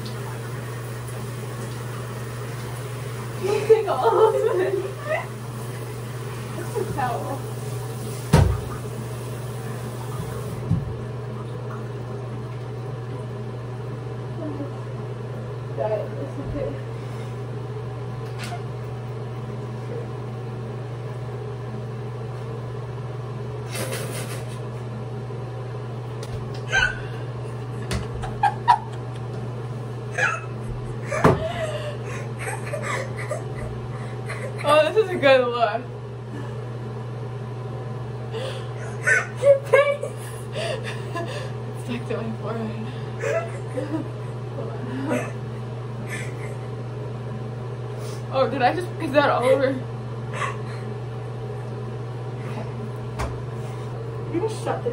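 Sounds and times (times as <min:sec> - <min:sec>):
low mechanical hum: 0:00.0 - 0:54.9.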